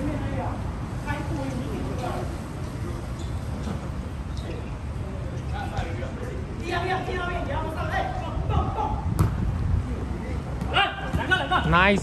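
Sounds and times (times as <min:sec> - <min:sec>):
wind rumble on microphone: 0:08.2 - 0:10.4.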